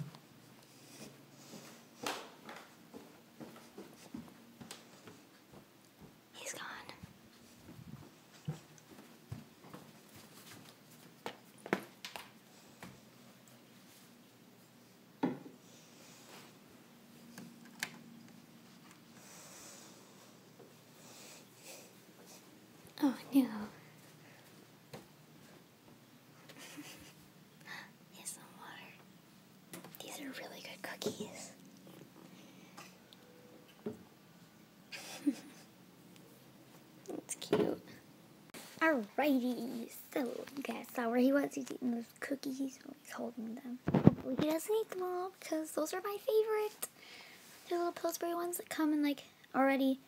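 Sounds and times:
person whispering: 6.4 - 7.0, 28.1 - 29.0, 30.0 - 31.6.

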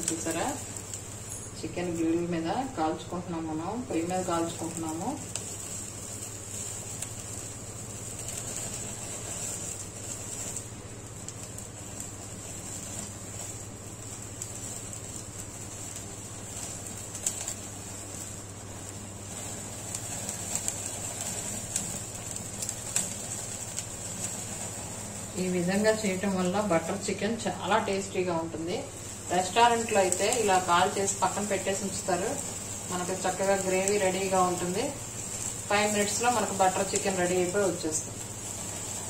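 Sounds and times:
faint crackles: 0.0 - 39.0
gas burner flame hissing: 0.0 - 39.0.

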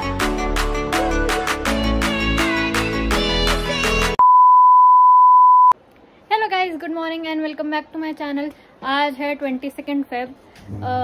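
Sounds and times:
loud electronic beep: 4.2 - 5.8.

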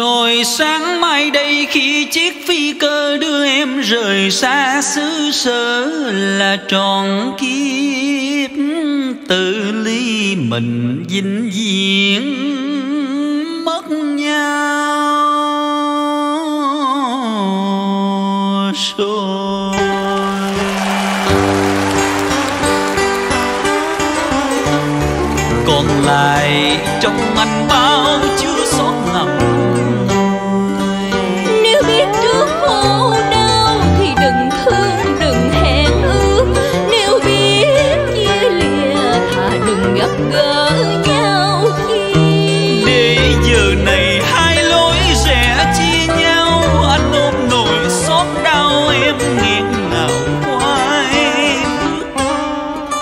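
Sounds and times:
man singing: 0.0 - 20.7, 24.4 - 40.3, 41.0 - 53.0
plucked strings rhythm: 19.7 - 53.0
bass line: 20.1 - 30.4, 42.6 - 50.6
long held note: 43.5 - 46.4.

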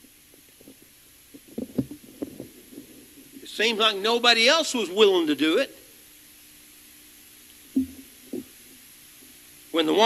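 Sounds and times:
faint steady hiss: 0.0 - 10.0
muffled low thumps: 7.7 - 8.6.

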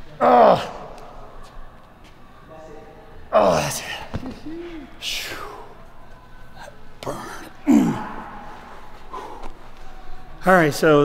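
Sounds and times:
man clearing throat: 7.0 - 8.2.

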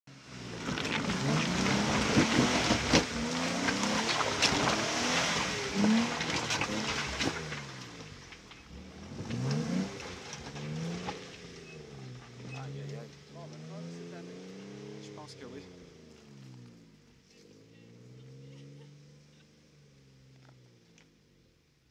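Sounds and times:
engine revving: 0.1 - 21.1
rock cracking under tyres: 0.4 - 13.7.

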